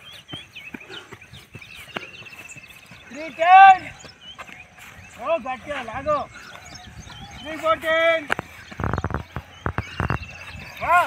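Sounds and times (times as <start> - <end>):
birds chirping: 0.0 - 11.0
runner's footsteps on dirt track: 0.0 - 11.0.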